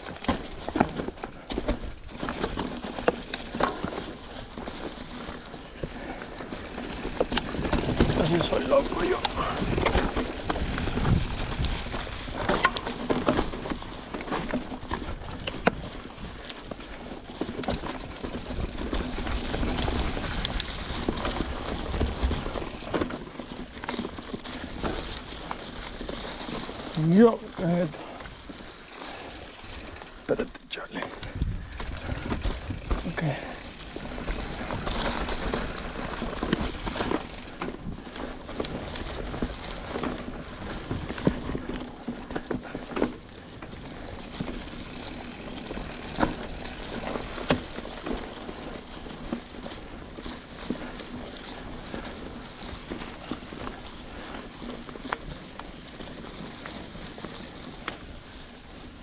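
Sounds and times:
bike clicks and knocks: 0:00.0 - 0:59.0
tyres crunching through dry leaves: 0:00.0 - 0:59.0
wind rumble on microphone: 0:09.4 - 0:12.4, 0:31.2 - 0:33.2.

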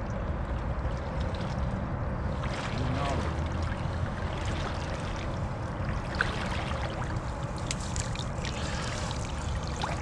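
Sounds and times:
steady low rumble: 0:00.0 - 0:10.0
water swishing and splashing: 0:00.0 - 0:10.0.

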